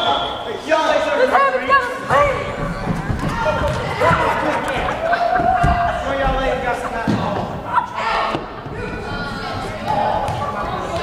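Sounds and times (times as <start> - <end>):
voices calling out in a gym: 0.0 - 11.0.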